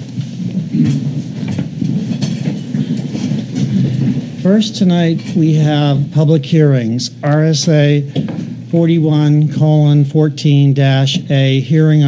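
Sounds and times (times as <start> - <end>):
chairs shuffling and scraping: 0.0 - 5.7
knocks and clatters: 0.5 - 4.3.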